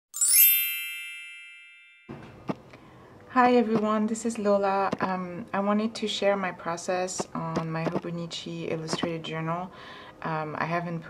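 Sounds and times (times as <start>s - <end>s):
shimmering chime run: 0.1s - 2.1s.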